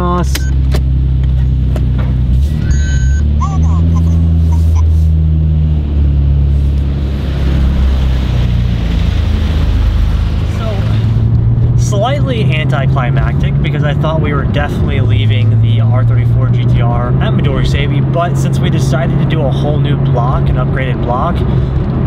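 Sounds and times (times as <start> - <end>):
car engine drone from inside cabin: 0.0 - 22.0
short electronic beep: 2.6 - 4.9.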